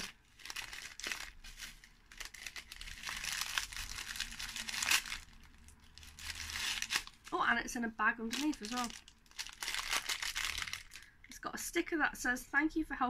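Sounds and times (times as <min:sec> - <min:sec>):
tissue paper rustling: 0:00.0 - 0:07.4, 0:08.3 - 0:11.0.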